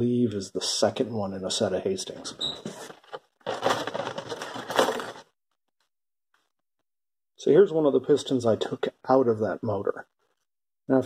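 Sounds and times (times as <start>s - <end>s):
cardboard box rustling: 2.6s - 5.3s.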